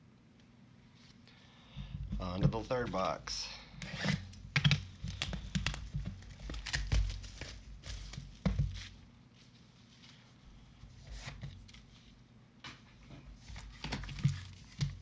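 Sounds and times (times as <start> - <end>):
plastic shrink-wrap tearing: 5.1 - 7.6.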